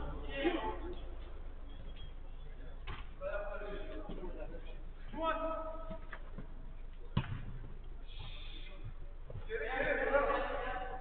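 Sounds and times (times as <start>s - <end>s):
football being kicked thud: 7.2s - 7.6s.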